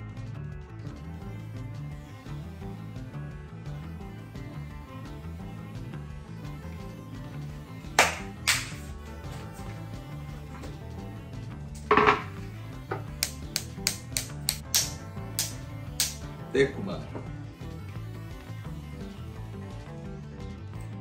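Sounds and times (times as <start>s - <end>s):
kitchen knocks and taps: 11.9s - 12.3s.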